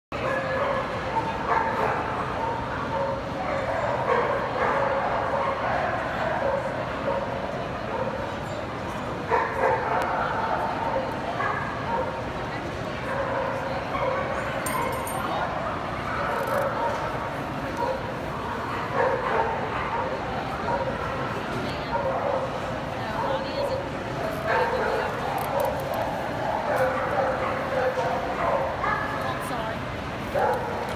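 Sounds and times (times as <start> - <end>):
murmur of crowd voices: 0.1 - 30.9
dogs barking and yipping: 0.2 - 8.3, 9.3 - 12.2, 18.8 - 21.3, 24.4 - 29.2, 30.3 - 30.8.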